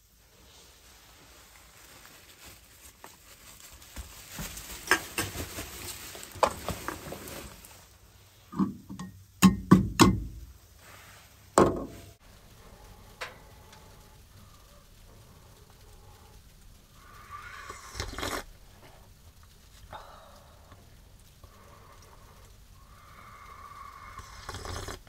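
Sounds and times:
camping gear knocks and thumps: 11.6s - 12.1s
slurp from a mug: 17.4s - 18.5s, 24.0s - 25.0s.

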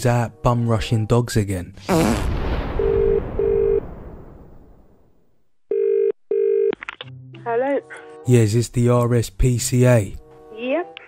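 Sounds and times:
telephone ringing tone: 2.8s - 3.8s, 5.7s - 6.7s.

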